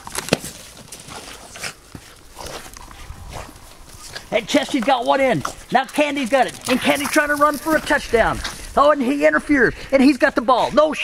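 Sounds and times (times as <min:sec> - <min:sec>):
dogs rustling and scuffing on grass: 0:00.1 - 0:10.6.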